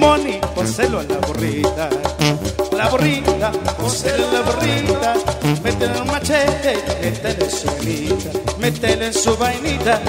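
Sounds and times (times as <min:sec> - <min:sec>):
brass band playing: 0:00.0 - 0:01.4, 0:02.0 - 0:07.8.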